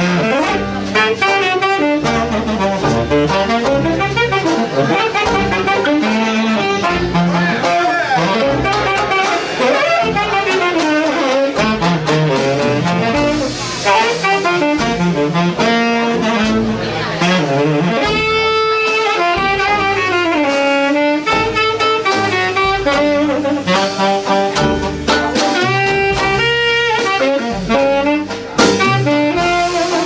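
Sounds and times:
jazz band playing: 0.0s - 30.0s
tenor saxophone solo: 0.0s - 30.0s.

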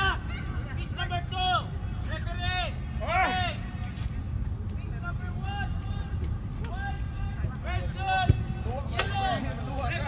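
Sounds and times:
players shouting: 5.3s - 10.0s.

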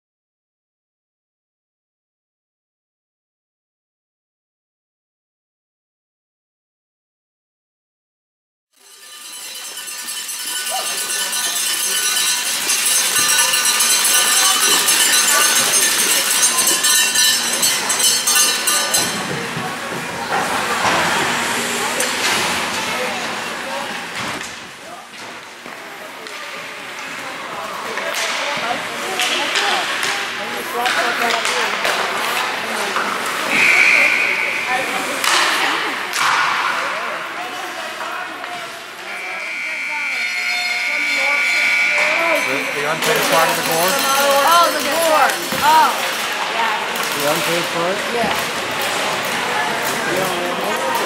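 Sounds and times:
ice rink ambience: 8.8s - 51.0s
indistinct voices: 9.2s - 25.2s, 25.8s - 51.0s
high whistle blast: 33.4s - 35.1s, 39.1s - 43.0s.

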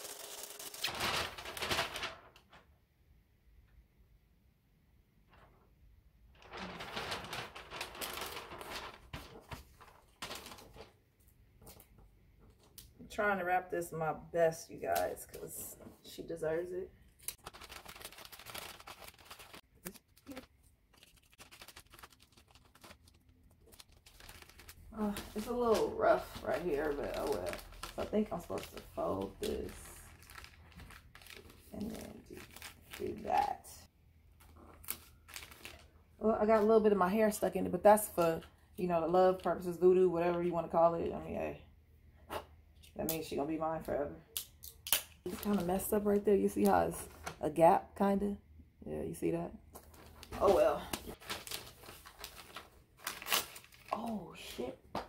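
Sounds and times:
wrapping paper crinkling: 0.0s - 2.6s, 6.3s - 11.0s, 17.2s - 33.6s, 34.4s - 36.0s, 49.8s - 54.3s.

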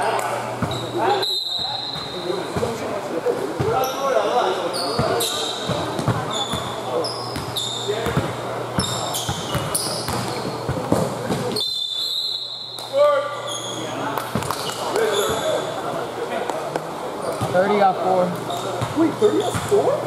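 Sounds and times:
sneakers squeaking on gym floor: 0.6s - 2.8s, 3.6s - 15.7s, 18.4s - 20.0s.

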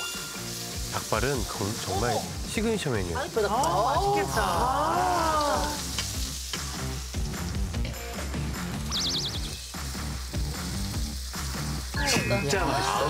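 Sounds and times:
background music: 0.0s - 13.0s
food sizzling in a wok: 0.0s - 13.0s.

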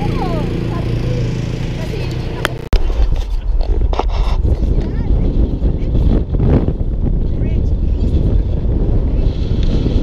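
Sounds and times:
road noise: 0.0s - 10.0s
wind buffeting microphone: 0.0s - 10.0s.

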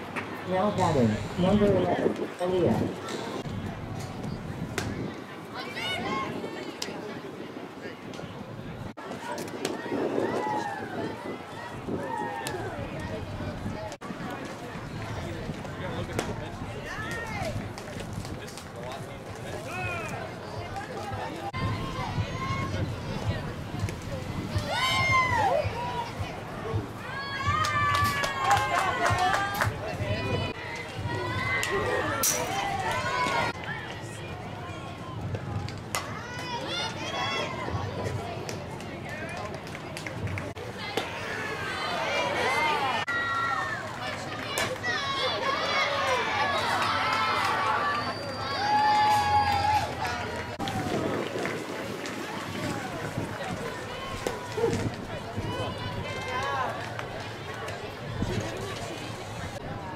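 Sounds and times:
sharp handclaps: 27.6s - 29.8s
high-pitched voices cheering: 41.2s - 51.0s.

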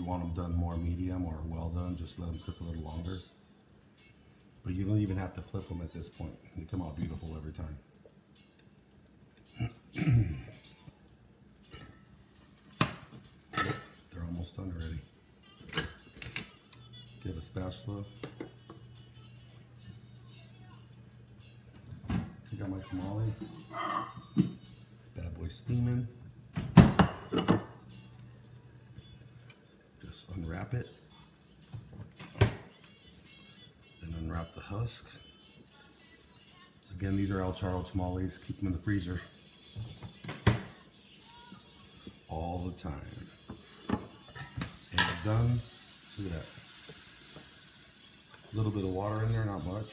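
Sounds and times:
kitchen appliance electrical hum: 0.0s - 49.9s
kitchenware clicks: 12.8s - 14.0s.

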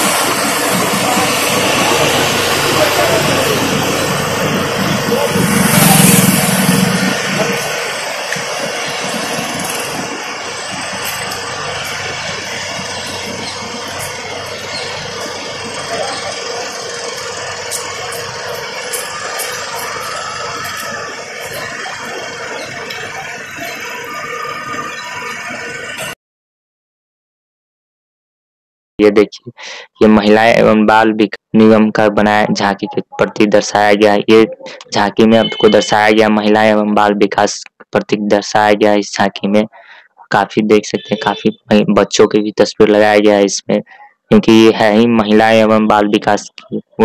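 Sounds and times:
outdoor traffic noise: 0.0s - 26.2s, 39.7s - 42.2s
vehicle engine passing close: 0.0s - 26.2s.

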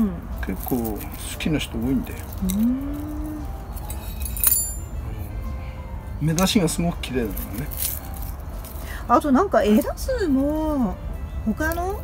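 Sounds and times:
man humming mm: 2.4s - 3.5s.

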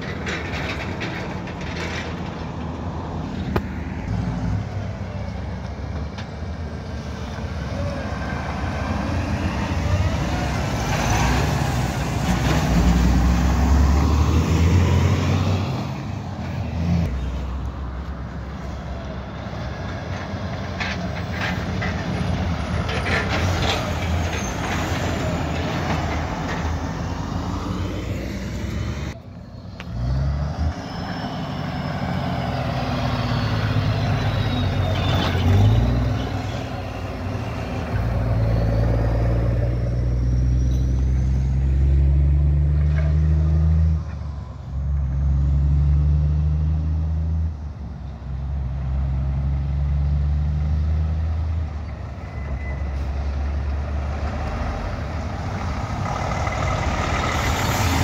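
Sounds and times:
diesel truck engines: 0.0s - 58.0s.

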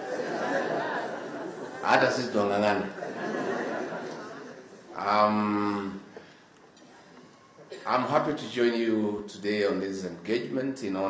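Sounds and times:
man speaking over speakers: 1.8s - 3.0s, 4.9s - 6.1s, 7.8s - 11.0s.

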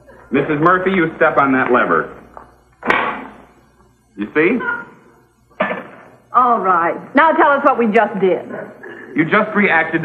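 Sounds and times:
sharp bang: 2.8s - 3.5s, 5.6s - 6.1s.

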